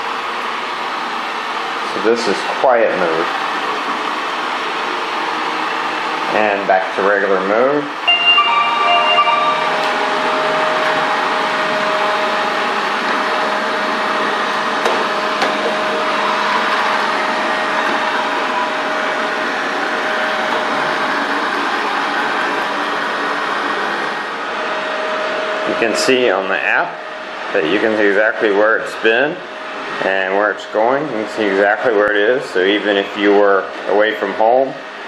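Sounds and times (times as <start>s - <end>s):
short tones: 8.0s - 10.7s.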